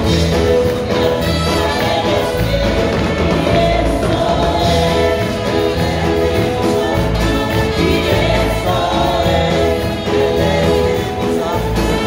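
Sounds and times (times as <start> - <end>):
church band playing gospel: 0.0 - 12.0
people singing: 0.0 - 12.0
trumpet lead: 0.0 - 12.0.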